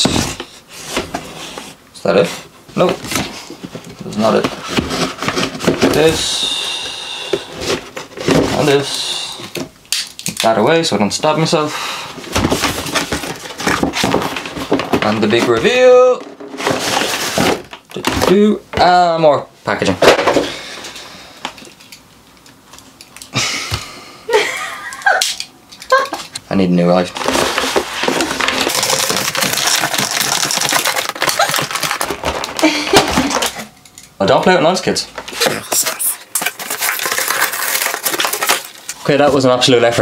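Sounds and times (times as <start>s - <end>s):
cardboard box being opened: 27.2s - 32.6s, 35.4s - 38.8s.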